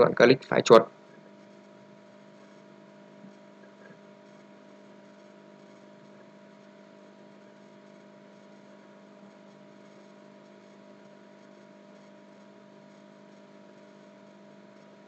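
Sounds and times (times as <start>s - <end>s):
faint electrical hum: 0.0s - 15.0s
low hiss: 0.0s - 15.0s.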